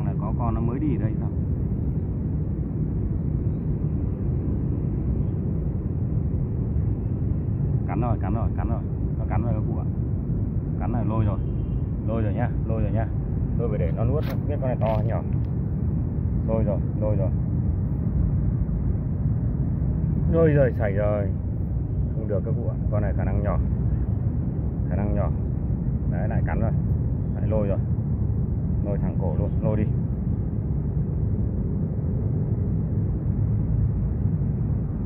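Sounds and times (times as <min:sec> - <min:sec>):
low rumbling background noise: 0:00.0 - 0:35.0.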